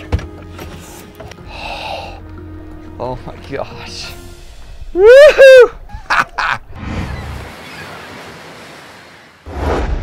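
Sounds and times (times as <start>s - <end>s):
sea water sloshing and surging: 6.8s - 10.0s.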